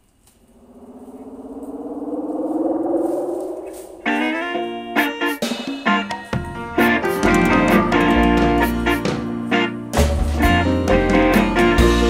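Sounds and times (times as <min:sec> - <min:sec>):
sustained musical tone: 0:00.6 - 0:05.2
background guitar music: 0:04.2 - 0:12.0.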